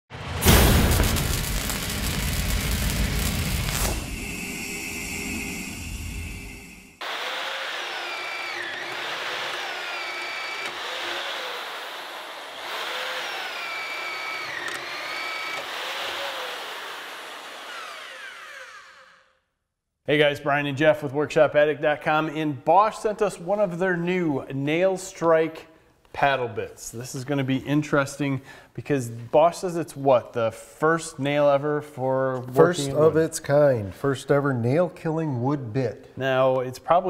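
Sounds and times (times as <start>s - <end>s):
intro whoosh and boom: 0.1s - 7.0s
hammer drill boring through wood: 7.0s - 19.4s.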